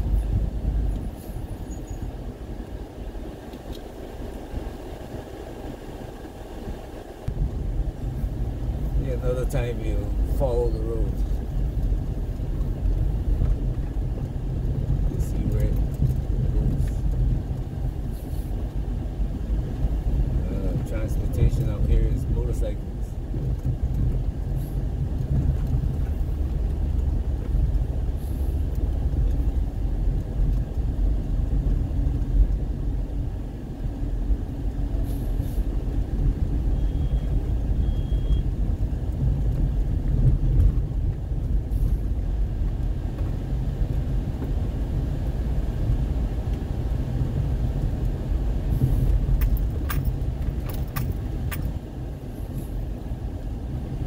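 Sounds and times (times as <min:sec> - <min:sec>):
car engine rumble: 0:00.0 - 0:54.0
tyres on dirt road: 0:00.0 - 0:54.0.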